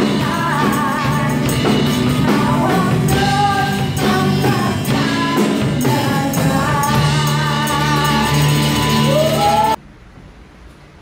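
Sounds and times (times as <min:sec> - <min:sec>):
worship band playing: 0:00.0 - 0:09.8.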